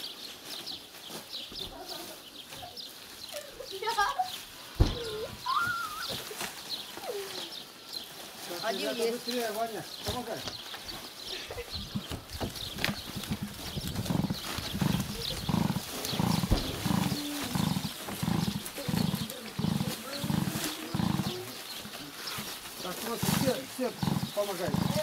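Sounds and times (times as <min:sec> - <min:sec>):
dry bark rustling and crackling: 0:00.0 - 0:25.0.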